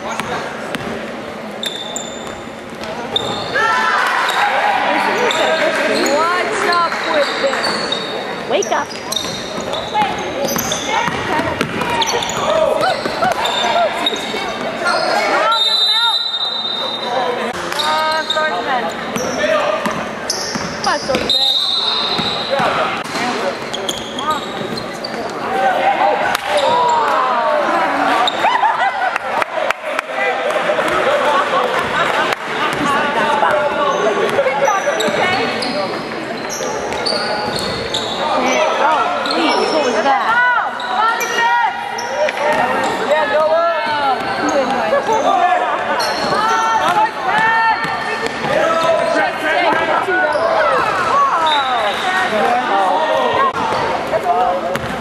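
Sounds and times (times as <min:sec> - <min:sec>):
basketball bouncing on wooden floor: 0:10.0 - 0:13.2, 0:54.7 - 0:55.0.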